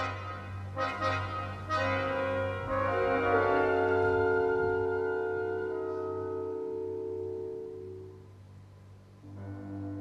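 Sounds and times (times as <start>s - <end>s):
orchestra sustained chord: 0.0s - 8.4s.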